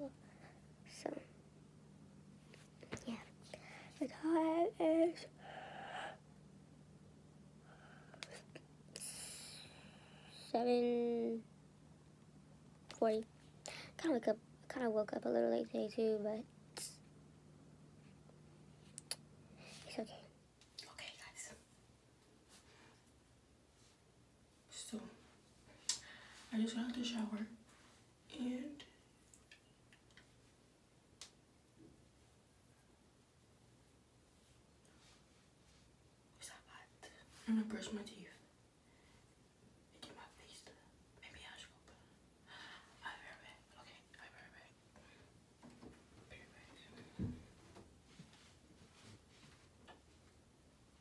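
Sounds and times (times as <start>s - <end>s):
low steady hum: 0.0s - 51.0s
faint whispering: 19.6s - 21.7s, 36.4s - 38.5s, 40.0s - 42.2s, 42.8s - 45.2s, 46.2s - 47.2s.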